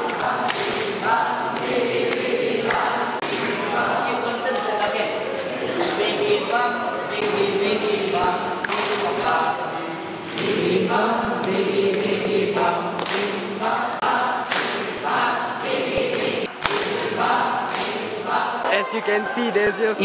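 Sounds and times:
group chanting a song: 0:00.0 - 0:19.0.

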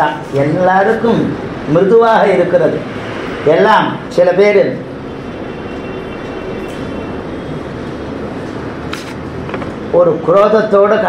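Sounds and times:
steady hiss and hum: 0:00.0 - 0:11.0.

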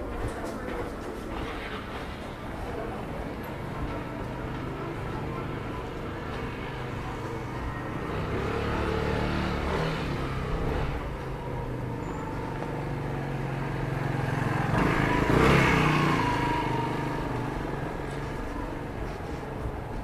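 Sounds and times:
vehicle engine passing by: 0:03.8 - 0:19.7.

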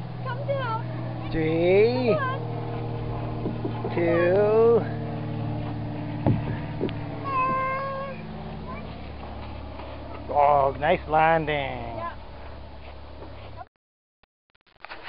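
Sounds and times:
light knocks: 0:03.4 - 0:04.0, 0:06.2 - 0:07.6
toddler calling out: 0:07.2 - 0:08.8.

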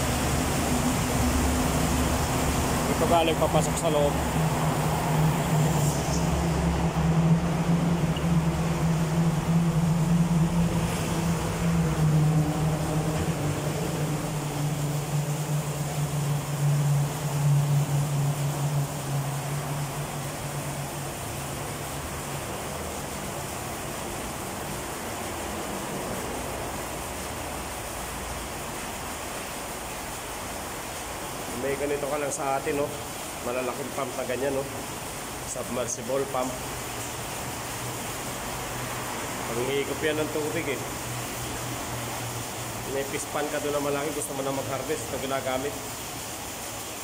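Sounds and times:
low hum: 0:00.0 - 0:23.8
hose water splashing into drain: 0:00.0 - 0:47.0.

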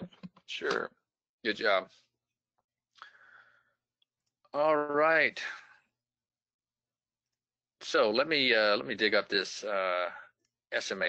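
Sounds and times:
man speaking: 0:00.5 - 0:00.9, 0:01.5 - 0:02.0, 0:04.6 - 0:05.8, 0:07.8 - 0:11.0.

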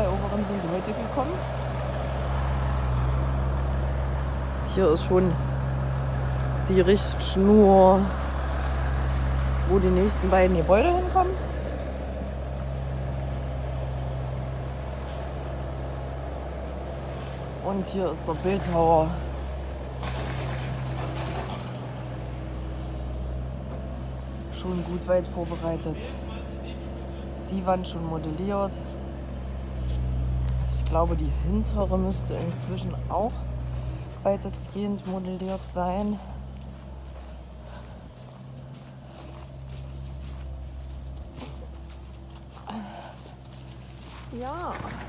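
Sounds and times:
diesel engine idling: 0:00.0 - 0:45.0
faint footsteps on ground: 0:00.0 - 0:45.0
low mechanical hum: 0:00.0 - 0:45.0.

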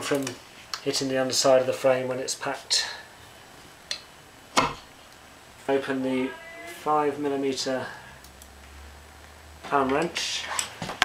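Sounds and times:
sharp knock: 0:04.6 - 0:04.8.

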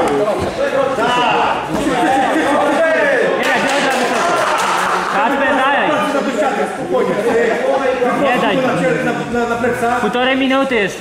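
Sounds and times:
men shouting in a hall: 0:00.0 - 0:09.8.

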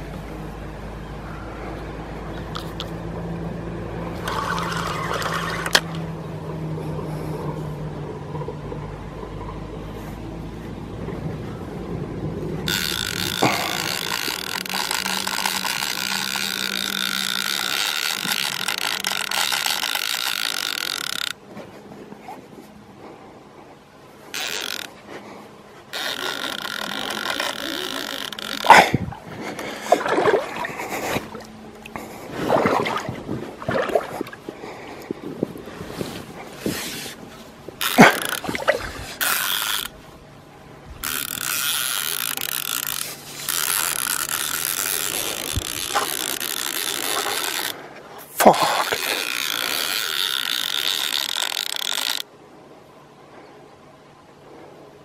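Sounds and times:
low steady hum: 0:00.0 - 0:55.0
fishing reel drag buzzing: 0:04.1 - 0:06.0, 0:12.6 - 0:21.4, 0:24.3 - 0:25.0, 0:25.9 - 0:29.9, 0:37.8 - 0:40.0, 0:41.0 - 0:52.3.

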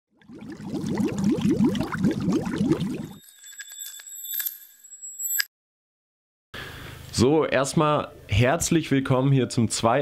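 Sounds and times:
high bell-like ringing tones: 0:03.1 - 0:05.5.

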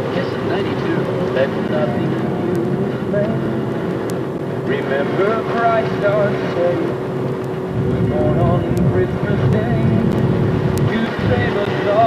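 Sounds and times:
car engine and tyre rumble: 0:00.0 - 0:12.0
constant low hum: 0:00.0 - 0:12.0.

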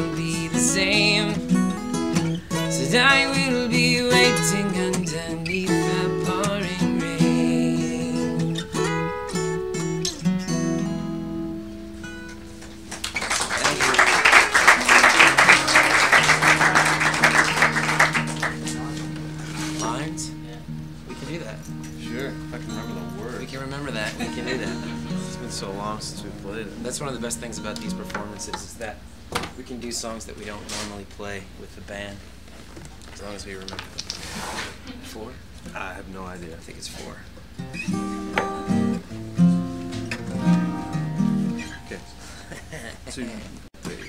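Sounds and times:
acoustic guitar notes ringing: 0:00.0 - 0:12.9, 0:13.7 - 0:29.2, 0:37.4 - 0:42.6.

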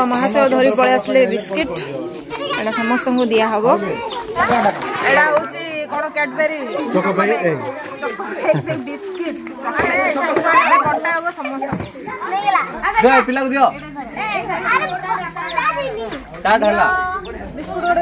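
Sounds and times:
adult voices: 0:00.0 - 0:18.0
children chattering and calling out: 0:00.0 - 0:18.0.

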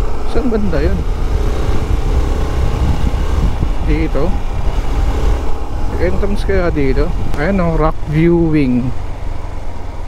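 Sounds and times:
single-cylinder motorcycle engine: 0:00.0 - 0:10.0
wind rumble on microphone: 0:00.7 - 0:09.0.

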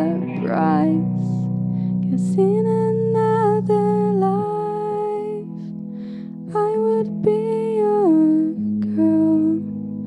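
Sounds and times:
young woman singing: 0:00.0 - 0:05.7, 0:06.4 - 0:10.0
low accompaniment chords: 0:00.0 - 0:10.0.

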